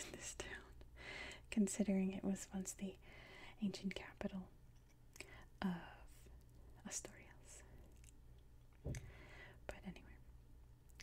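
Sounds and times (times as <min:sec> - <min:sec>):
low steady hum: 0:00.0 - 0:11.0
person whispering: 0:06.8 - 0:07.7, 0:09.7 - 0:10.2.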